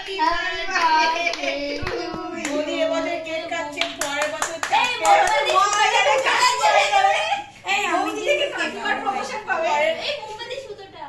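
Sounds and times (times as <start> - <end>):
voices: 0.0 - 11.0
people clapping: 0.7 - 2.8, 3.7 - 6.9.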